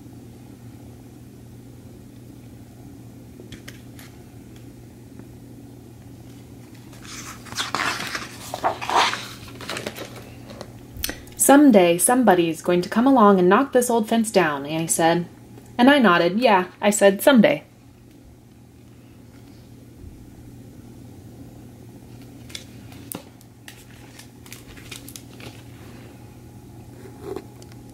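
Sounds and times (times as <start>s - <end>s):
low background hum: 0.0s - 27.9s
book page turning: 6.7s - 10.6s, 22.2s - 25.8s.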